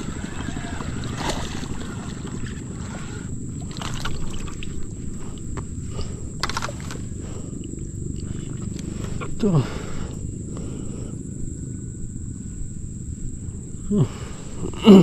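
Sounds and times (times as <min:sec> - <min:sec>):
wind rumbling on microphone: 0:00.0 - 0:15.0.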